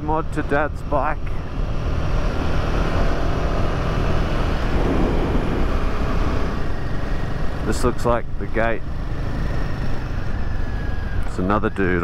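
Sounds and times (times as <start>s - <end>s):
motorcycle engine rumbling: 0.0s - 12.0s
wind rushing on microphone: 2.3s - 8.1s.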